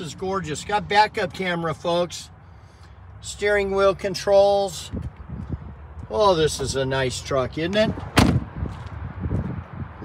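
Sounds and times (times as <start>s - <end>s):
car door slamming: 8.1s - 8.5s.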